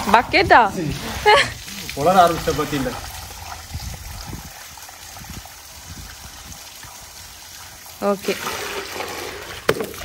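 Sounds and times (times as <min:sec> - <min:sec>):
hose water splashing into pot: 0:00.0 - 0:10.0.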